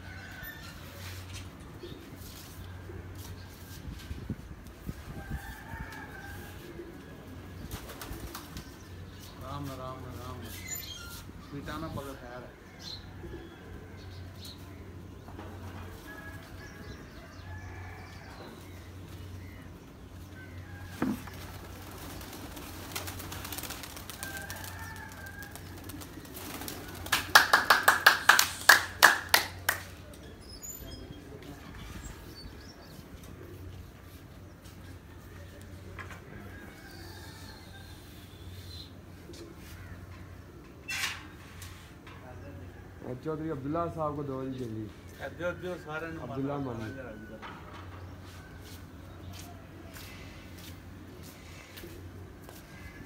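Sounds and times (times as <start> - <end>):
rapid sharp claps: 26.7 - 30.0.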